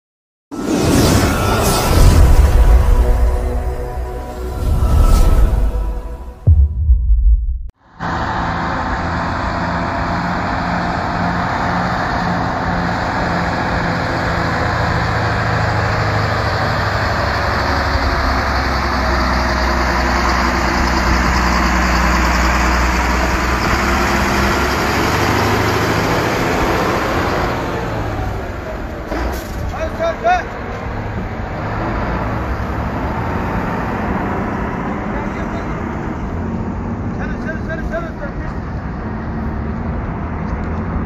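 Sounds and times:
road traffic: 0:00.5 - 0:06.6, 0:07.7 - 0:41.0
truck engine humming past: 0:07.8 - 0:29.2.

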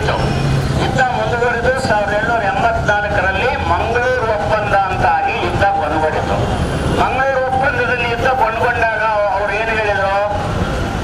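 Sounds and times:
man speaking into microphone: 0:00.0 - 0:10.5.

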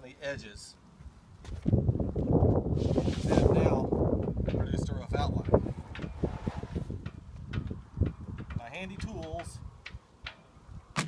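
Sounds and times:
wind buffeting microphone: 0:01.2 - 0:11.0.

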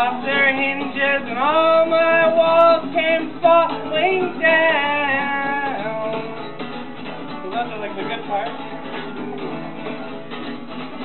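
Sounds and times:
man singing: 0:00.0 - 0:06.6
acoustic guitar strumming: 0:00.0 - 0:11.0.

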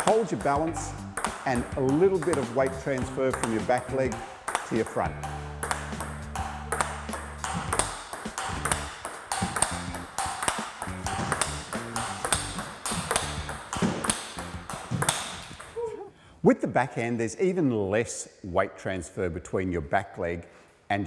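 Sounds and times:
background music: 0:00.0 - 0:15.8
table tennis ball clicks: 0:01.2 - 0:05.0, 0:05.6 - 0:15.8.

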